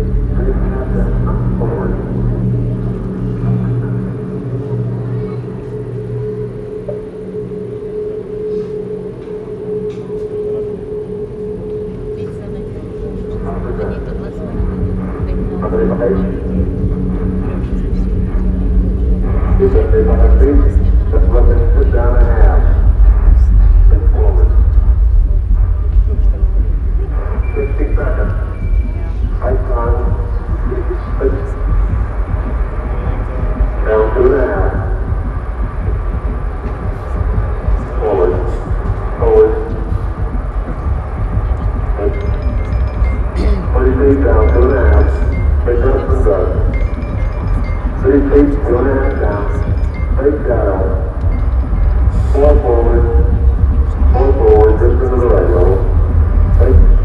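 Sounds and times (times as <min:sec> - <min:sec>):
deep rocket rumble: 0:00.0 - 0:57.0
voices: 0:00.0 - 0:57.0.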